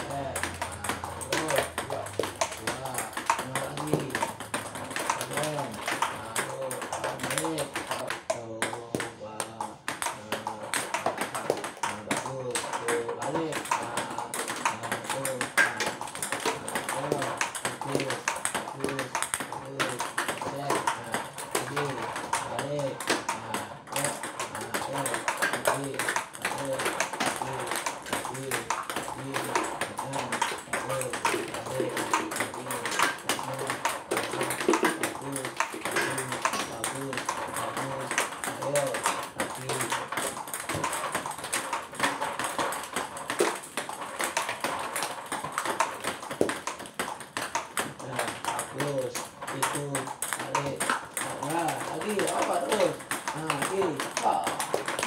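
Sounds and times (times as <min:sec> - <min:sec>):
voices: 0:00.0 - 0:43.6, 0:47.8 - 0:55.0
balls bouncing on table: 0:00.0 - 0:55.0
table tennis balls clicking off paddles: 0:00.0 - 0:55.0.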